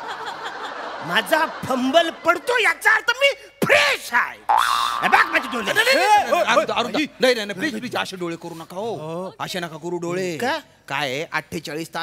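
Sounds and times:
man's voice: 0:01.0 - 0:12.0.

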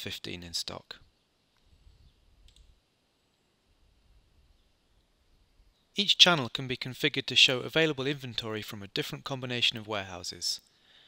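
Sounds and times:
computer mouse clicks: 0:02.4 - 0:02.8.

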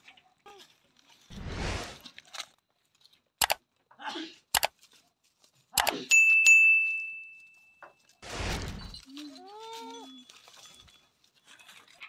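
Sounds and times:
short rushing noise: 0:01.3 - 0:02.0, 0:08.2 - 0:09.0
bright bell ding: 0:06.1 - 0:07.8.

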